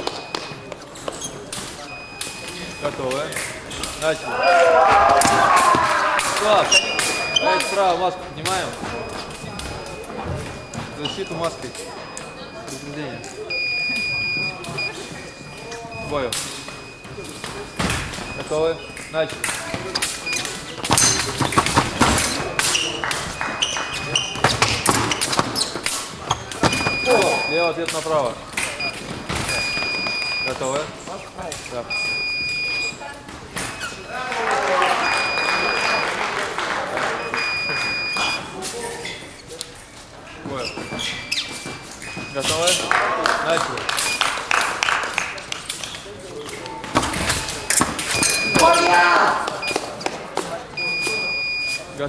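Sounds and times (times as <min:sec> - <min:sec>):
voices in reverberant hall: 0:00.0 - 0:52.0
short electronic beeps: 0:01.8 - 0:03.0, 0:06.7 - 0:19.2, 0:26.3 - 0:27.8, 0:31.9 - 0:33.0, 0:48.2 - 0:48.9, 0:50.8 - 0:51.9.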